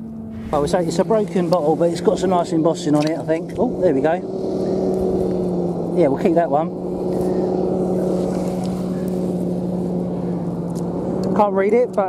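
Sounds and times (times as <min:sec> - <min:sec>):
engine running steadily: 0:00.0 - 0:12.0.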